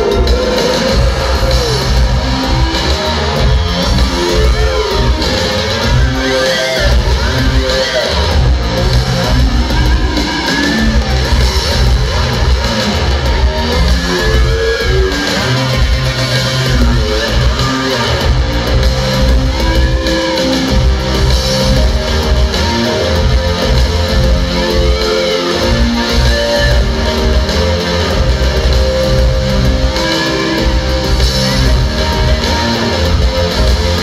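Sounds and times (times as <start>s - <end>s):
live synth-pop band: 0.0s - 34.0s.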